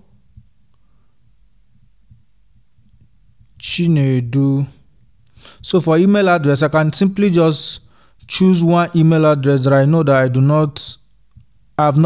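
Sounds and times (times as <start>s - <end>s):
soft low thumps: 0.0s - 6.1s
faint low hum: 0.0s - 12.0s.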